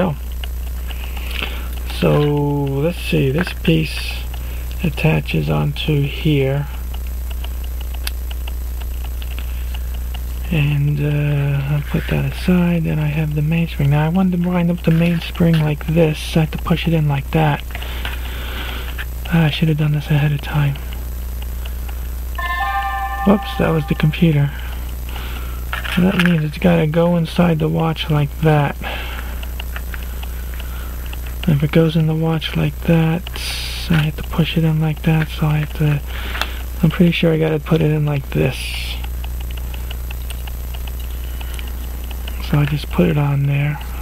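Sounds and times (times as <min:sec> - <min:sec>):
steady low hum: 0:00.0 - 0:44.0
computer alert chord: 0:22.4 - 0:24.7.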